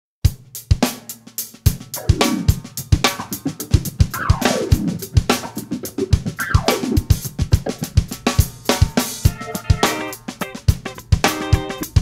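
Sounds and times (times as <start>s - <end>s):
drum-kit groove: 0.2s - 12.0s
falling pitch slides: 3.2s - 7.2s.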